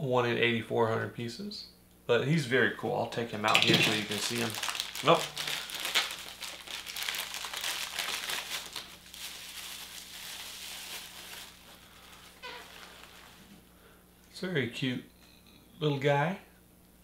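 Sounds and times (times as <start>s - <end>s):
bubble wrap crinkling: 3.5s - 13.6s.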